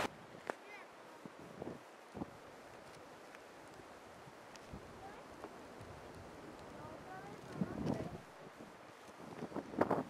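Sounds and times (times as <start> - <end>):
wind on microphone: 1.2 - 2.5, 4.2 - 10.0.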